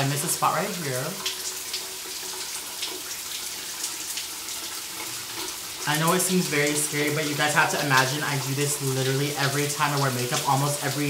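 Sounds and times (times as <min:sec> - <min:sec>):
shower water running: 0:00.0 - 0:11.0.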